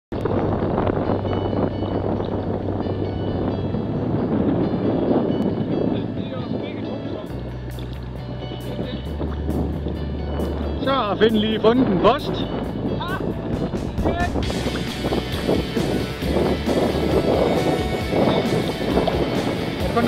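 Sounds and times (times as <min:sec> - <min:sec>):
wind buffeting microphone: 0:00.1 - 0:20.0
sea water splashing: 0:14.3 - 0:20.0.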